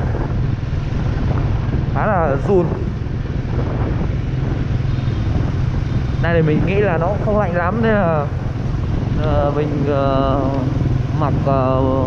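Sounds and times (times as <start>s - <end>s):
motorbike running: 0.0s - 12.0s
road noise: 0.0s - 12.0s
wind rushing over microphone: 0.0s - 12.0s.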